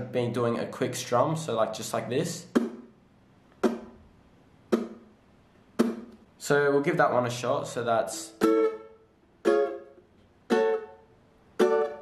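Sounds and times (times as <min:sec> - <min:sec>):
ukulele chord strums: 0:02.4 - 0:03.0, 0:03.6 - 0:04.0, 0:04.7 - 0:05.2, 0:05.8 - 0:06.3, 0:07.9 - 0:12.0.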